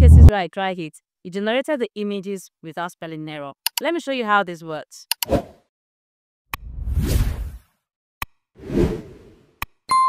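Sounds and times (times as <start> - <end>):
whoosh: 6.6 - 7.6.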